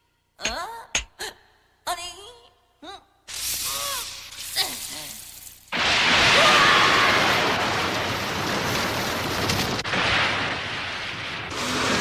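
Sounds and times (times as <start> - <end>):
hissing water spray: 3.3 - 5.8.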